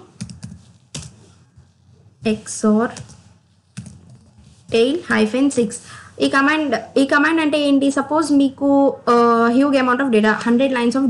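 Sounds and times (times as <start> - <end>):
computer keyboard typing: 0.2 - 1.2.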